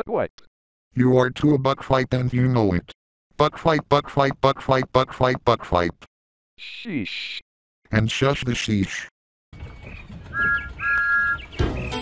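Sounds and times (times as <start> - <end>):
upbeat children's theme music: 11.1 - 12.0.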